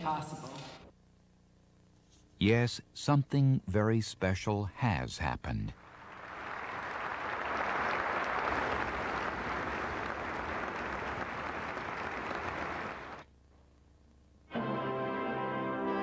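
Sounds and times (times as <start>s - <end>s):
audience applauding: 5.8s - 13.2s.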